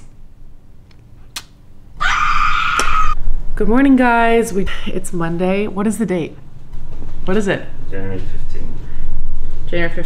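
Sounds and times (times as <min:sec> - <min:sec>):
kiss smack: 0:01.3 - 0:01.6.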